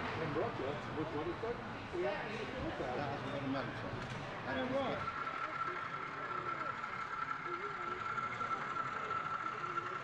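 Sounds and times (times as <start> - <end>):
indistinct crowd chatter: 0.0 - 10.0
model train motor whine: 4.1 - 10.0.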